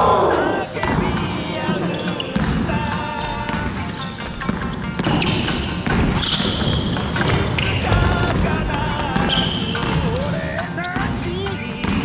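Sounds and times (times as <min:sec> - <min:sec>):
sneaker squeak: 0:00.5 - 0:12.0
basketball bouncing on hardwood floor: 0:02.0 - 0:10.3, 0:10.9 - 0:12.0.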